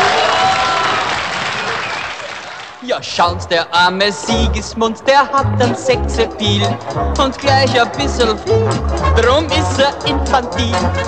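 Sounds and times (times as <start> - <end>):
crowd applauding: 0.0 - 3.0.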